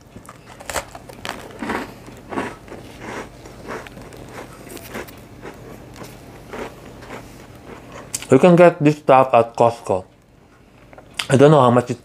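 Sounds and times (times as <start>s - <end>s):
person chewing crunchy rusk: 0.2s - 8.3s.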